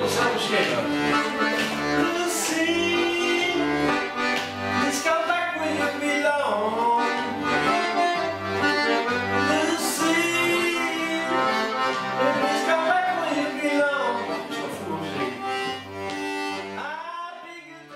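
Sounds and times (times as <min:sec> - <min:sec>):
man singing: 0:00.0 - 0:01.2, 0:01.8 - 0:07.9, 0:09.3 - 0:15.7, 0:16.6 - 0:17.9
button accordion playing: 0:00.0 - 0:17.9.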